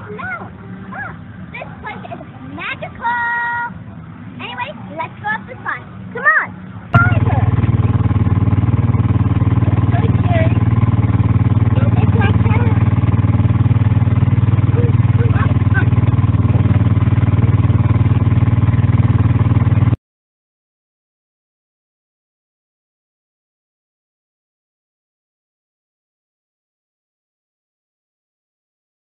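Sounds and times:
child's voice: 0.0 - 3.8, 4.4 - 7.5
small engine running: 6.9 - 20.0.

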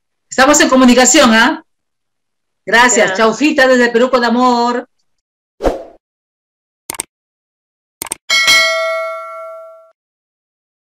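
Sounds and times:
bell ding: 8.3 - 10.0.

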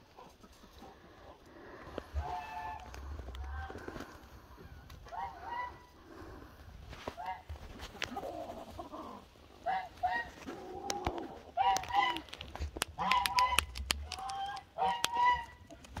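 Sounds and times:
duck calling: 12.9 - 15.7.

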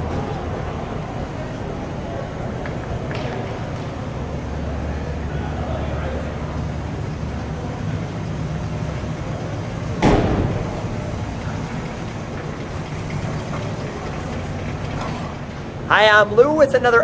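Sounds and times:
sudden loud engine burst: 10.0 - 11.7.

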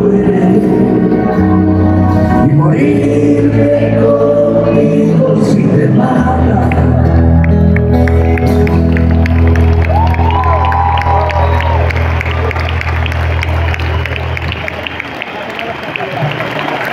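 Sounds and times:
crowd cheering and applauding: 6.6 - 16.9.

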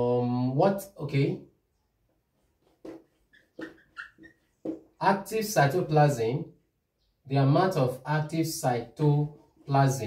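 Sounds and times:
whiteboard marker squeaking: 2.6 - 5.0.

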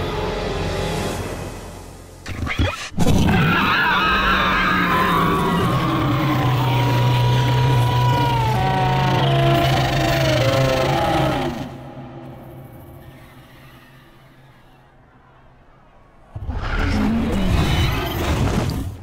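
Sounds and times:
dragon roaring: 3.2 - 12.3.

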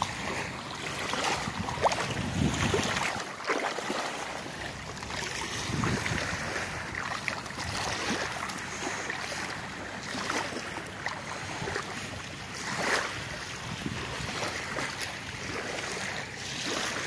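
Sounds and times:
small waves lapping: 0.0 - 17.0
wind buffeting microphone: 0.6 - 3.3, 5.2 - 8.4, 13.4 - 14.8.

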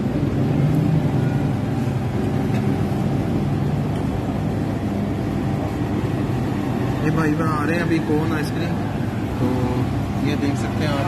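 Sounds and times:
faint hum: 0.0 - 11.0
low mechanical rumble: 0.0 - 11.0.

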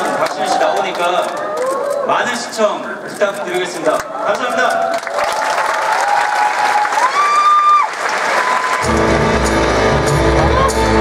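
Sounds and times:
audience applauding: 0.0 - 2.1, 4.0 - 11.0
music playing: 8.8 - 11.0
music with deep bass: 8.8 - 11.0.

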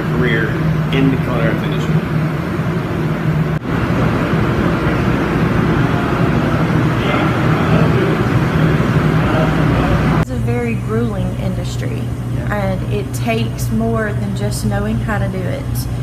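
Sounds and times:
kitchen ventilation rushing: 0.0 - 16.0.

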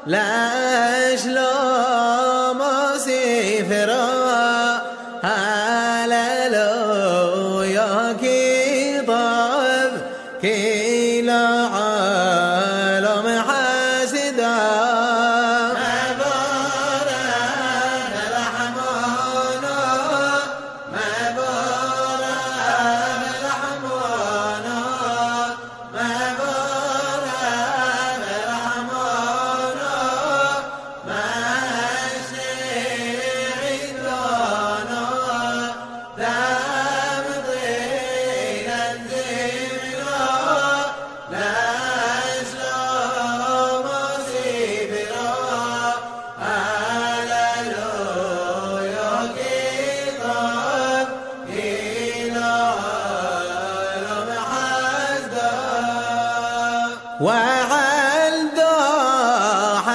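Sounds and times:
person chanting: 0.0 - 59.9.

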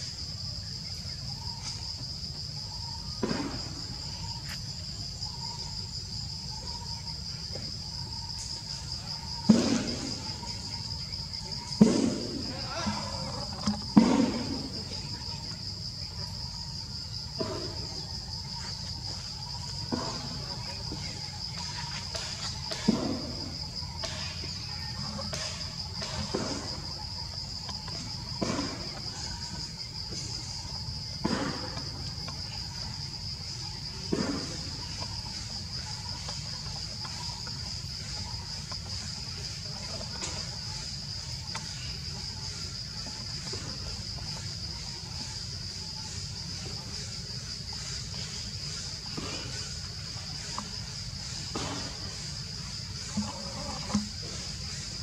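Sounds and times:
high-pitched insect chorus drone: 0.0 - 55.0.

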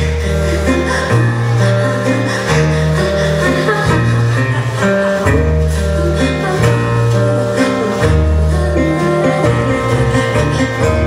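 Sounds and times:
double bass: 0.0 - 11.0
drums: 0.0 - 11.0
electric guitar: 0.0 - 11.0.

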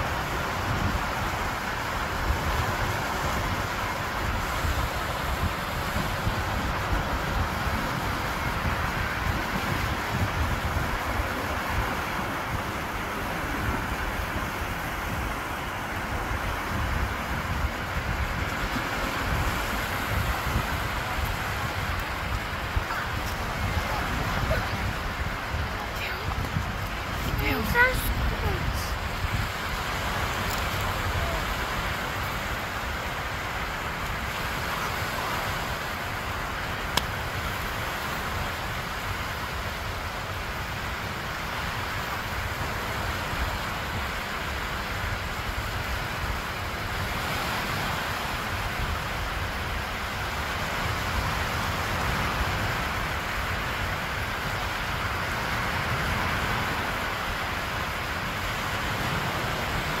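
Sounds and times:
small waves breaking on shore: 0.0 - 60.0
wind on microphone: 0.0 - 60.0.

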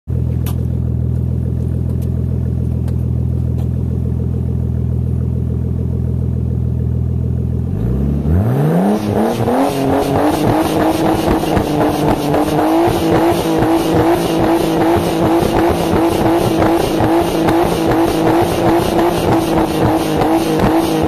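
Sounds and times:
car engine idling and revving: 0.1 - 21.0
exhaust crackling pops: 0.3 - 3.8, 10.3 - 21.0.

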